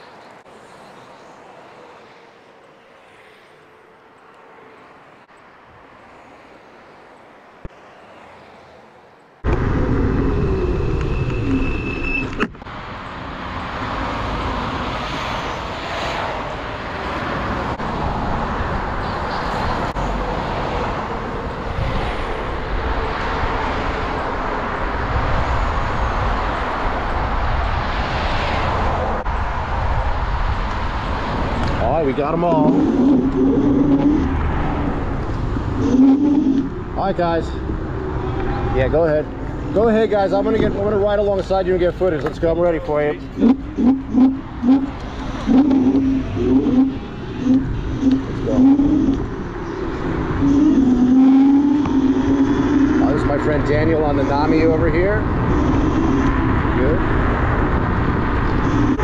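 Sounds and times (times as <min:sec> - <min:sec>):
faint street traffic: 0:00.0 - 0:59.0
scooter road noise: 0:00.0 - 0:59.0
wind rushing over microphone: 0:09.4 - 0:59.0.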